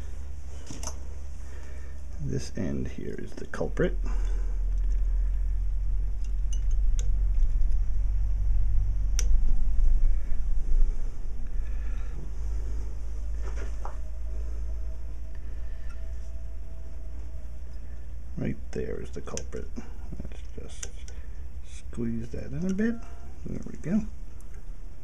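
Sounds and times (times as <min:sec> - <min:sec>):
steady low rumble: 0:00.0 - 0:25.0
sharp clicks of pliers and wire: 0:06.2 - 0:07.8, 0:18.7 - 0:19.6, 0:20.2 - 0:21.2, 0:22.5 - 0:23.0.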